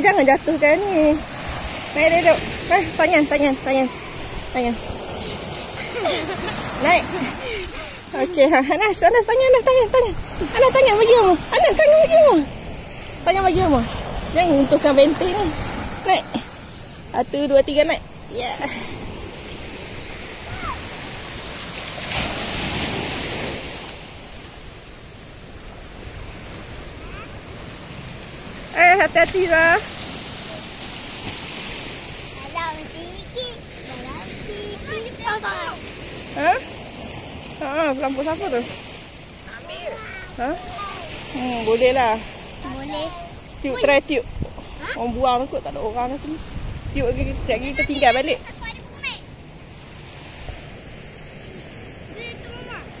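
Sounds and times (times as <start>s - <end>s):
surf breaking on beach: 0.0s - 53.0s
distant children's voices: 20.4s - 20.9s, 26.8s - 27.6s
child calling out: 20.5s - 20.8s, 39.5s - 41.1s.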